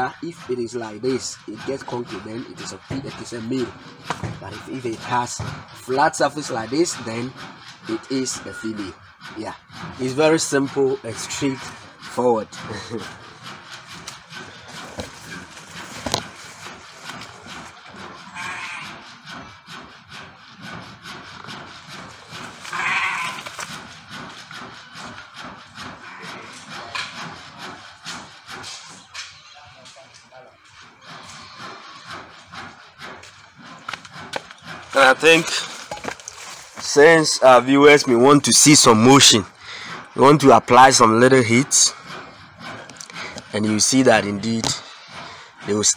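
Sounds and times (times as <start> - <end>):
brief animal calls: 18.3 - 19.0, 22.7 - 23.4.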